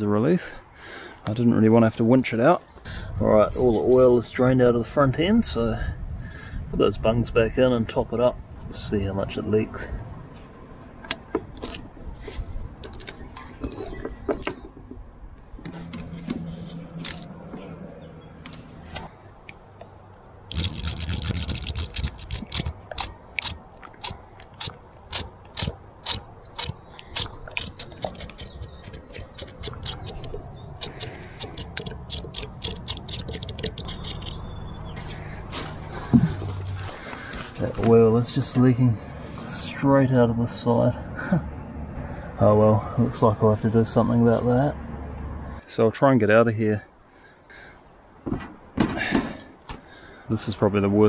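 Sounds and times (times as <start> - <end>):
metal clicks and scrapes: 11.0 - 14.8, 15.6 - 17.6, 20.5 - 34.4.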